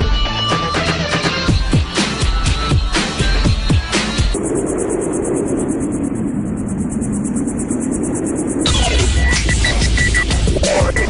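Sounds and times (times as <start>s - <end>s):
fluttering electronic rushing noise: 3.0s - 11.0s.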